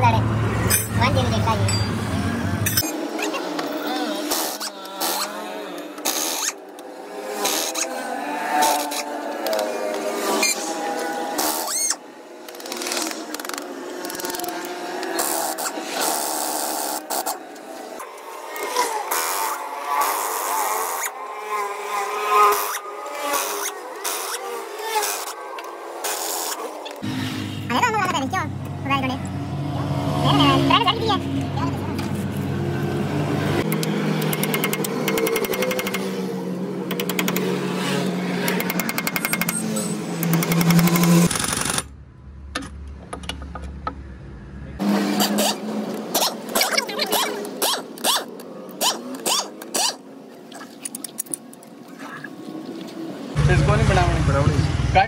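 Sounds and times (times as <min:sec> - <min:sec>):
pneumatic impact wrench rattling: 0:06.0 - 0:06.7, 0:11.3 - 0:17.4, 0:33.6 - 0:36.2, 0:36.8 - 0:41.9, 0:45.2 - 0:50.0.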